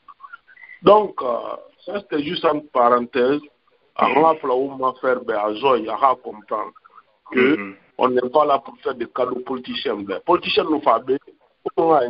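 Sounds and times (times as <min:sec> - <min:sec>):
man talking: 0:00.1 - 0:12.0.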